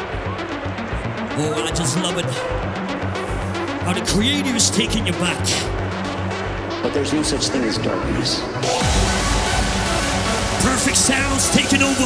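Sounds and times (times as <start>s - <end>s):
hardstyle electronic dance music: 0.0s - 6.9s, 8.4s - 12.0s.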